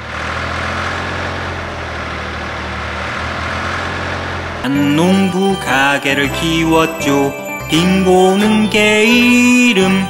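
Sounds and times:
cartoon tractor engine: 0.0 - 10.0.

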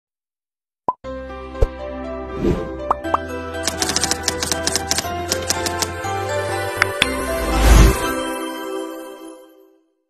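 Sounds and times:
pop sound effect: 2.8 - 3.3.

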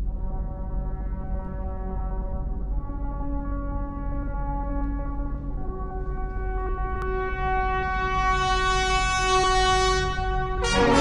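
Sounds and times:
brass holding a chord: 0.1 - 11.0
full orchestra chord: 6.0 - 11.0.

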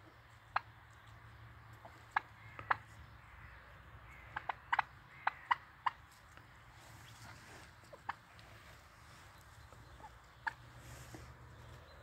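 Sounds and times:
poultry alarm calls: 0.0 - 12.0.

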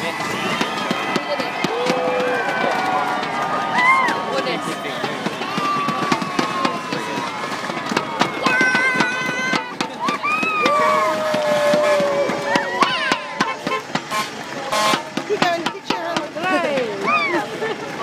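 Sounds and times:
crowd cheering and calling out: 0.0 - 18.0.

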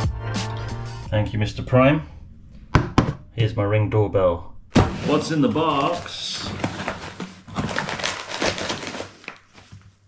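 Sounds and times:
cardboard box being opened: 4.8 - 9.8
paper packaging rustling: 4.8 - 10.0.

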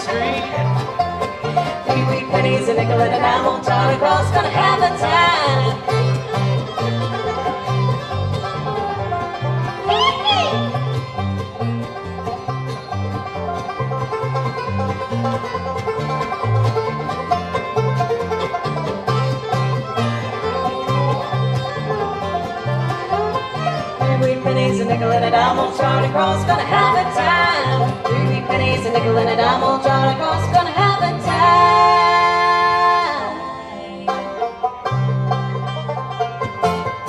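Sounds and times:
bluegrass band playing: 0.0 - 37.0.

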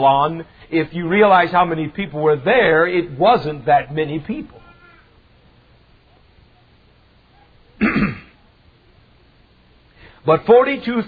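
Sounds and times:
person coughing: 7.8 - 8.4.

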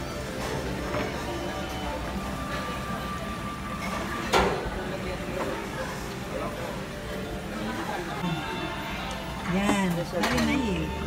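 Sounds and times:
restaurant background rumble: 0.0 - 11.0.

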